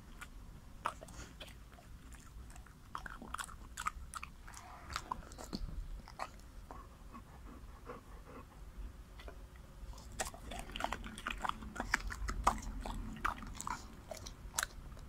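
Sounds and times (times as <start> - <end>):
dog chewing wet smacks: 0.0 - 6.9, 9.2 - 15.0.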